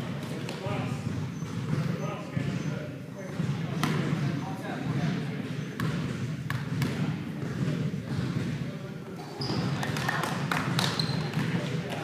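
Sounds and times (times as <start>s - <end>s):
basketball bouncing on hardwood floor: 1.0s - 2.0s, 5.8s - 8.6s, 9.4s - 11.6s.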